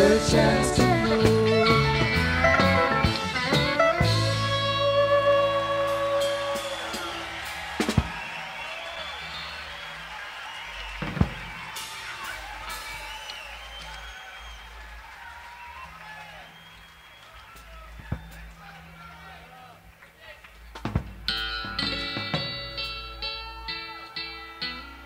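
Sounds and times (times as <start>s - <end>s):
band final chord on electric guitars: 0.0s - 7.9s
low stage noise: 0.0s - 25.0s.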